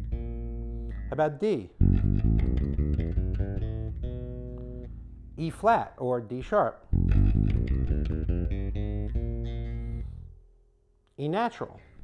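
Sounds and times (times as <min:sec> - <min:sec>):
electric bass guitar scale run: 0:01.8 - 0:05.1, 0:06.9 - 0:10.3.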